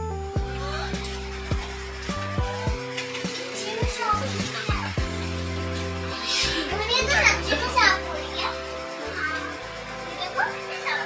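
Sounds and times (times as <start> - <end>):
background music with bass notes: 0.0 - 11.0.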